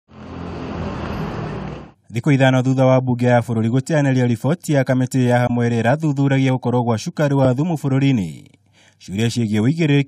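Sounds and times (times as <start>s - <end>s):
car engines and tyres: 0.1s - 2.0s.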